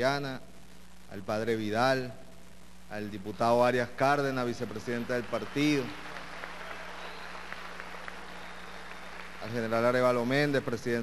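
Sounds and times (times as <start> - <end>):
low steady hum: 0.0 - 11.0
audience clapping: 4.6 - 11.0.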